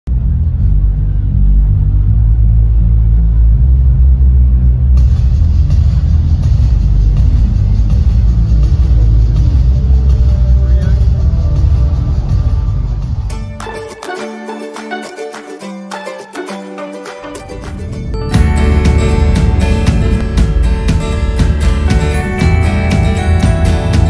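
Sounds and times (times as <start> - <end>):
bass-heavy music over loudspeakers: 0.1 - 13.5, 18.1 - 24.0
crowd noise: 0.1 - 24.0.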